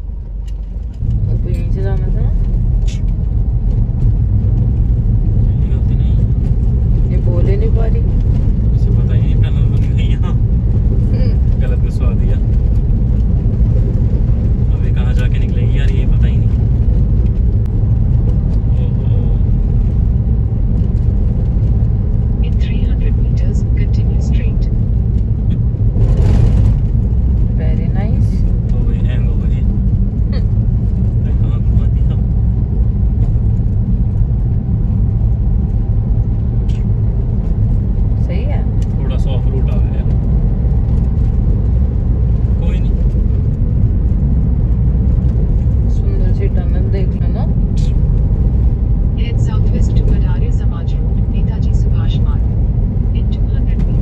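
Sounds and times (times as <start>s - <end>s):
car road and engine rumble: 0.0s - 54.0s
rush of noise: 0.0s - 54.0s.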